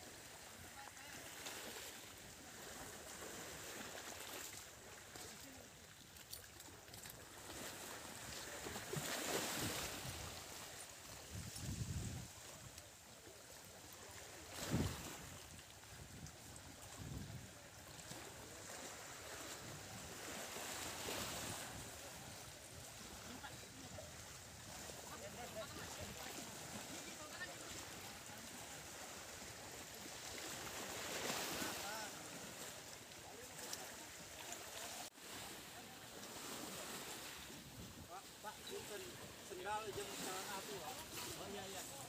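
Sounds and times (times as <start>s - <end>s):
seawater sloshing: 0.0s - 42.0s.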